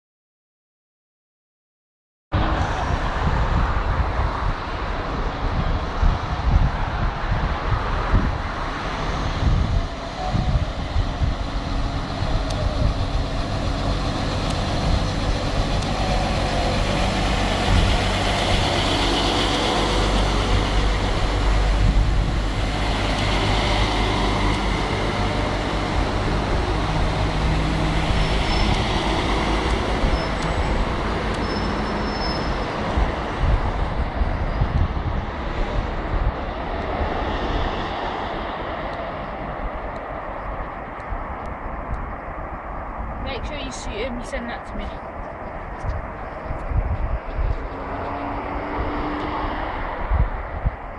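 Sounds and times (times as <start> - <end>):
wheels rumbling on rails: 2.4 - 50.9
diesel train engines running: 8.5 - 37.3.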